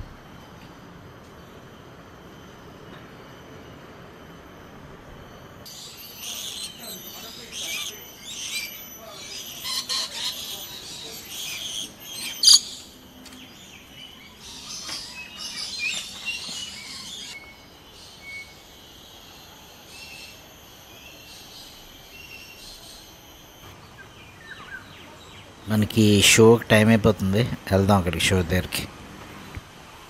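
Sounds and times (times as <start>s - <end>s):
thin high steady tone: 1.4s - 28.9s
birds chirping: 5.3s - 29.6s.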